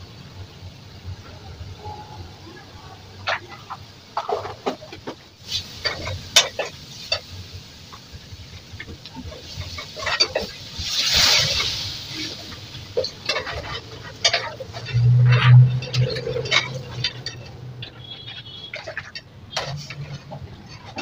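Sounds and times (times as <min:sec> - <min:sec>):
liquid sizzling in hot pan: 0:03.2 - 0:21.0
metal spoon scraping steel pan: 0:13.0 - 0:21.0.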